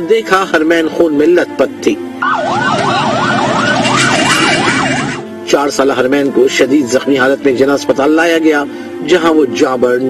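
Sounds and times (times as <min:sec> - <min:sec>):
ambulance siren yelping: 0:02.2 - 0:05.3.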